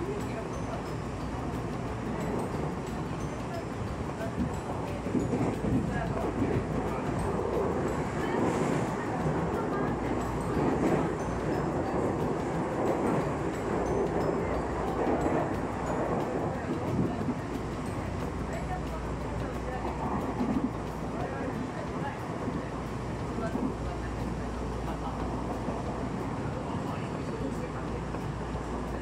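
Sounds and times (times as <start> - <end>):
train wheels rumbling on rail: 0.0 - 29.0.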